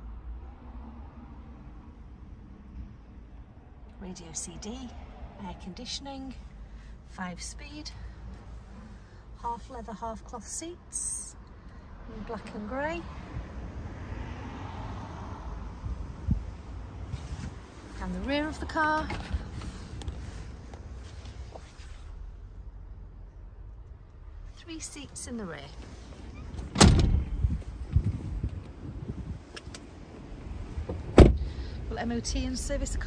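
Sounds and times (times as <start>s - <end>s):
wind rumble on microphone: 15.4s - 17.8s, 26.9s - 31.2s
thump: 26.7s - 27.4s, 31.1s - 31.4s
wind on microphone: 27.0s - 29.5s.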